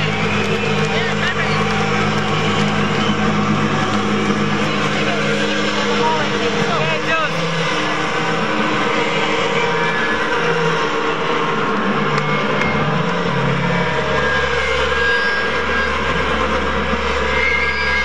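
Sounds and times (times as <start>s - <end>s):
crowd cheering and whistling: 0.0s - 18.0s
low held notes from stage: 0.0s - 18.0s.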